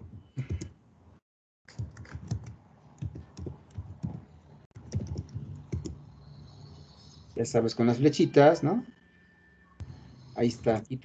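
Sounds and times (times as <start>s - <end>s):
computer keyboard typing: 1.7s - 4.2s, 4.8s - 6.0s.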